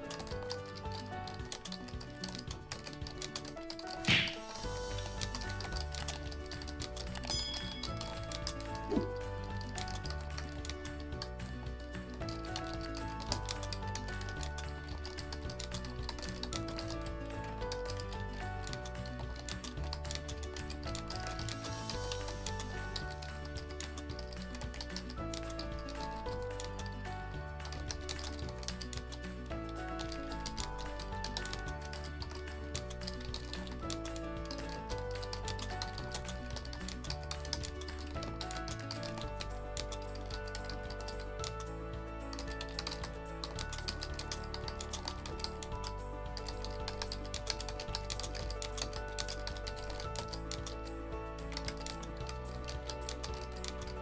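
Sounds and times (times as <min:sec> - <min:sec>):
background music with bass: 0:00.0 - 0:54.0
computer keyboard typing: 0:00.0 - 0:54.0.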